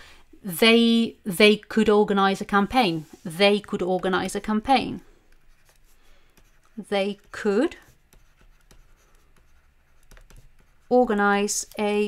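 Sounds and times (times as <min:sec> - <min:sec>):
stylus scratching on tablet: 0:02.7 - 0:11.7.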